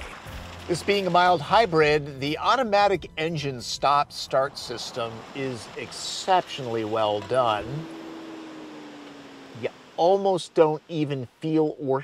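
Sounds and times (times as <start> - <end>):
faint car engine hum and hiss: 0.0 - 12.0.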